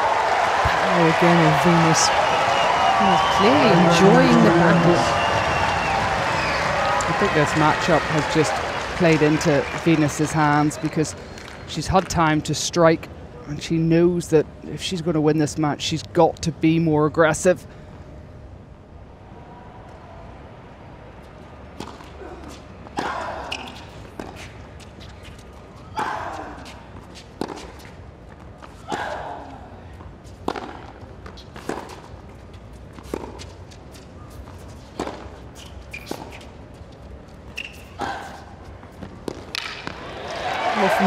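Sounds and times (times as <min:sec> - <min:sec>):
crowd cheering and applauding: 0:00.0 - 0:11.6, 0:39.9 - 0:41.0.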